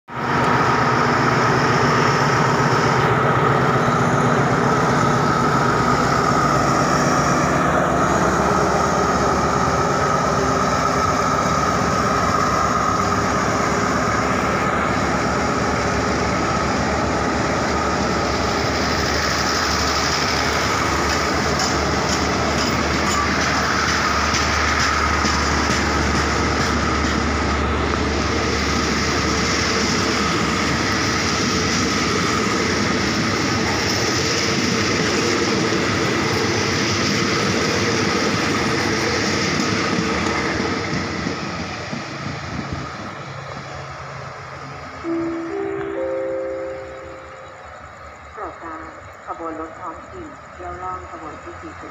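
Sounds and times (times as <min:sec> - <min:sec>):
diesel locomotive engine droning: 0:00.1 - 0:51.9
train wheels on rails: 0:00.1 - 0:51.9.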